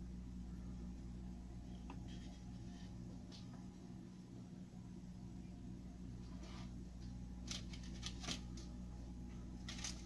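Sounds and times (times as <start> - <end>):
steady low hum: 0.0 - 10.0
dough rustling on wax paper: 1.7 - 3.4, 7.4 - 8.7, 9.5 - 10.0.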